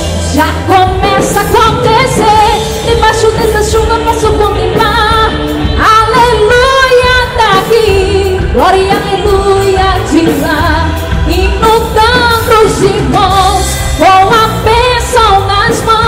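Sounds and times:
gospel band playing: 0.0 - 16.0
woman singing with vibrato: 0.0 - 16.0.

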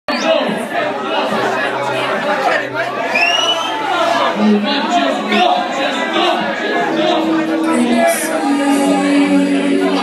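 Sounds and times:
crowd chatter: 0.1 - 10.0.

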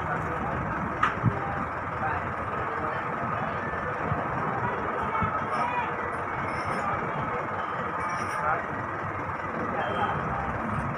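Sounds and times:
vehicles passing: 0.0 - 10.9.

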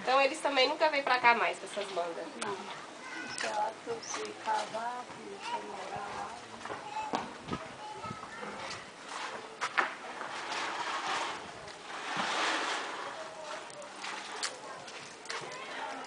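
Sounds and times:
faint voices: 1.0 - 16.0.

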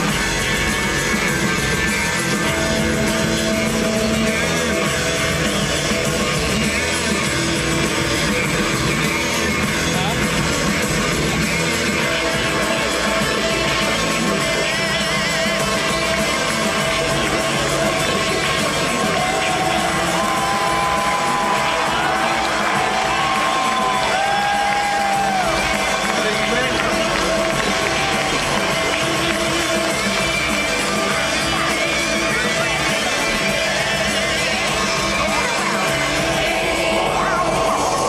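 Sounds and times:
live rock music: 0.0 - 38.0
audience cheering: 18.1 - 31.7.

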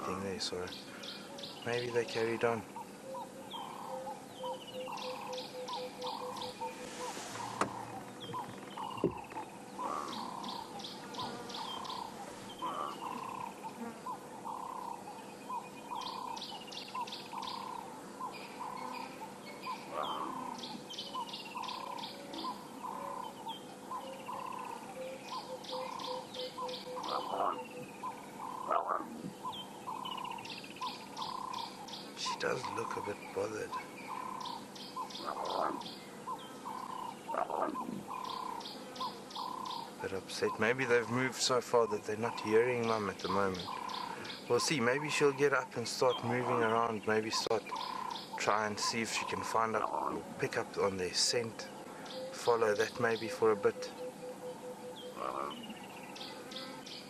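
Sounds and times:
birds calling: 0.0 - 57.0
faint insect hum: 0.0 - 57.0
louder sliding bird calls: 6.1 - 8.5.

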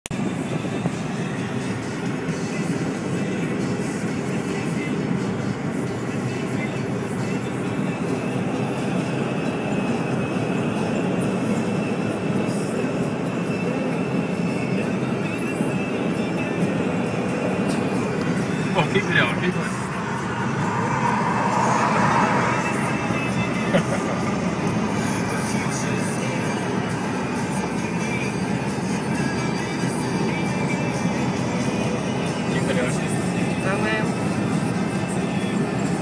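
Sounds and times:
road and engine noise inside car: 0.1 - 36.0.

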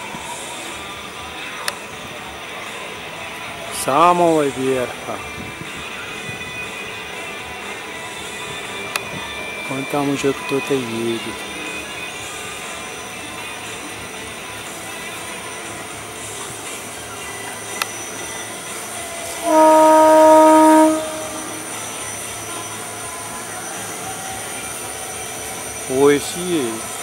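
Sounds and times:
horn blast: 19.4 - 22.1.

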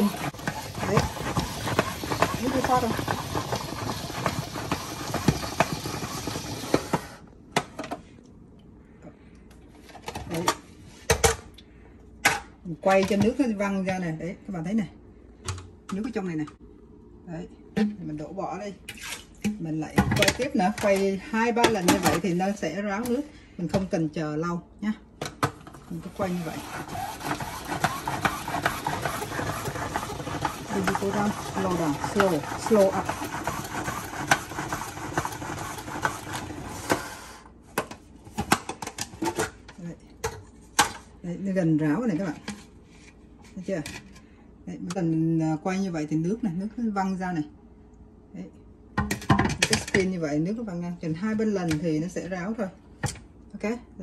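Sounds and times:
salad spinner whirring and clicking: 0.0 - 7.0, 26.2 - 36.8.

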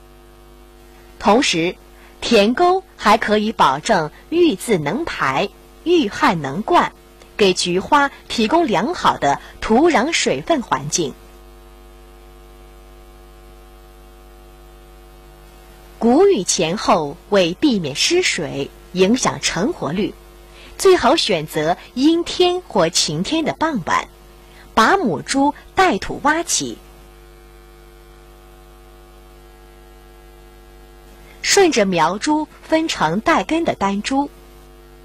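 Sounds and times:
electrical mains hum: 0.0 - 35.0.

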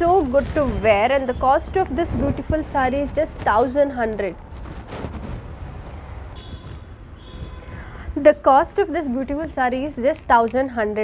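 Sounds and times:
fabric rustling: 0.0 - 9.5
low background rumble: 0.0 - 10.2.

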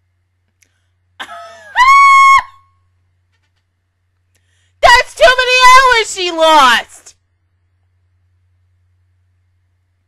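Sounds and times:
woman squealing: 1.2 - 2.7.

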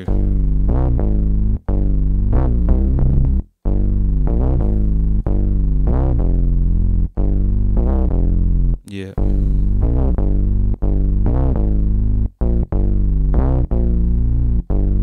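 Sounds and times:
synthesizer low chords: 0.0 - 15.0.

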